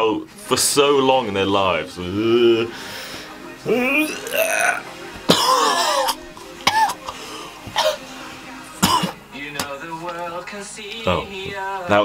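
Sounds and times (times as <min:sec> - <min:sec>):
throaty vocal noises: 0:02.0 - 0:03.0, 0:03.6 - 0:08.0.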